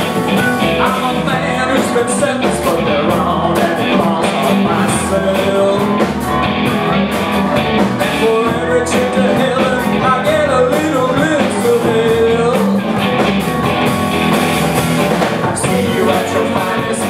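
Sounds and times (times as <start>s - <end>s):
drums steady beat: 0.0s - 17.0s
live rock and roll band: 0.0s - 17.0s.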